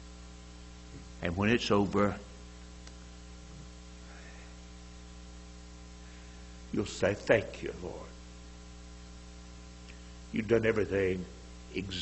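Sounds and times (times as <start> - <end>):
electrical mains hum: 0.0 - 12.0
low hiss: 0.0 - 12.0.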